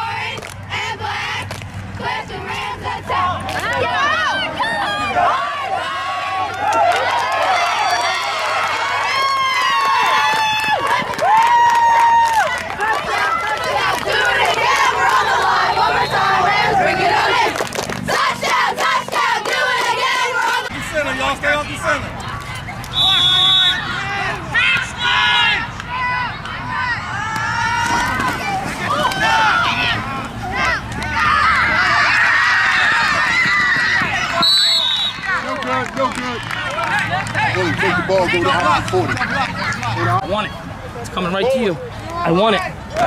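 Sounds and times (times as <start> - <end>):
spectators yelling and cheering: 0.0 - 43.0
shrill whistle blast: 22.9 - 23.8, 34.4 - 35.3.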